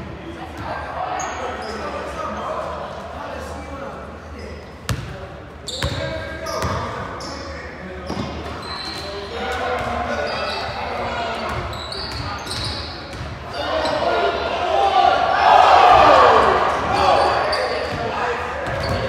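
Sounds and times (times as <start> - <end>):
sneakers squeaking on floor: 0.6 - 2.5, 4.4 - 14.2, 16.8 - 19.0.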